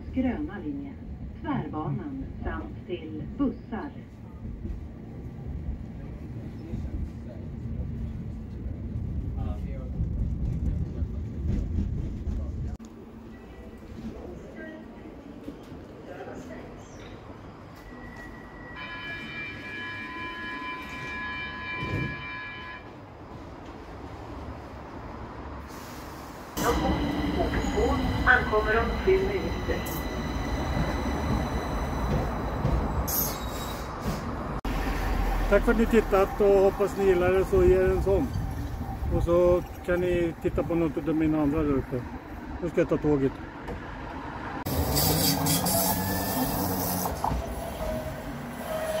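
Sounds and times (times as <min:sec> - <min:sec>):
tram rumbling on rails: 0:00.0 - 0:49.0.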